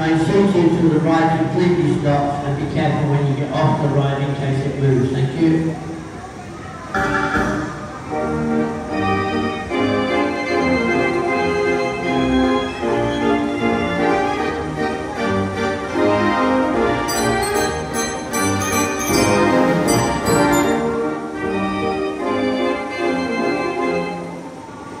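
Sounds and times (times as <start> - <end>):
fairground organ music: 6.9 - 24.8
percussion strokes: 17.1 - 21.2.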